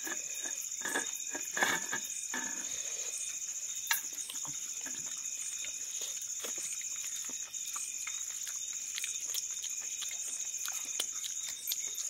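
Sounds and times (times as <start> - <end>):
fingers scraping a steel plate: 0.0 - 2.8.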